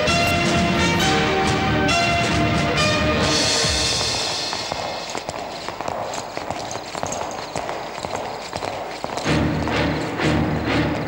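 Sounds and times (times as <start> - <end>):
pulsing dramatic film music: 0.0 - 4.8, 9.3 - 11.0
boots walking on hard floor: 0.0 - 11.0.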